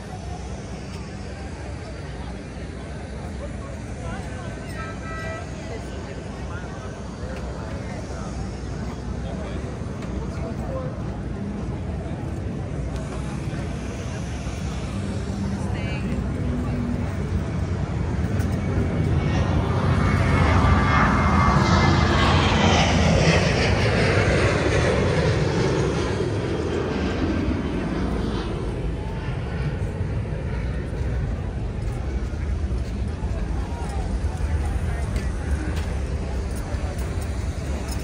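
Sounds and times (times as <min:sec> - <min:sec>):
airplane flying over: 0:00.0 - 0:38.0.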